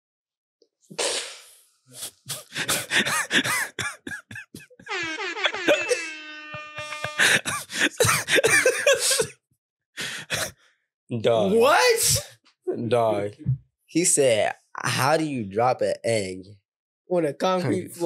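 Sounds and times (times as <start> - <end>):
men laughing hard: 2.1 - 9.3
groaning wail: 4.9 - 8.0.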